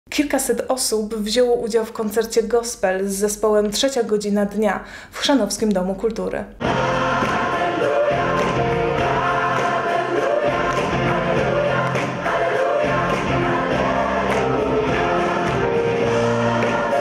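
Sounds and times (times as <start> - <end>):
gospel choir singing: 6.6 - 17.0.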